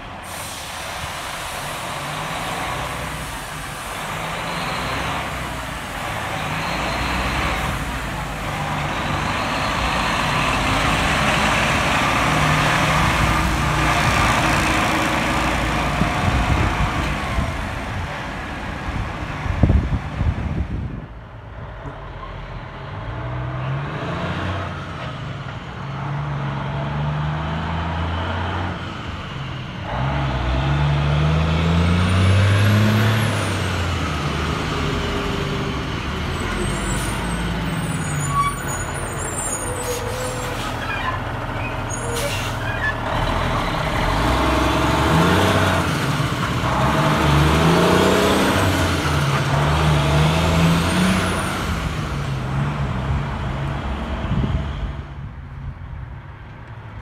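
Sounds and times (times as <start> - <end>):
truck diesel engine accelerating: 0.0 - 56.8
air brake hisses: 0.2 - 2.1.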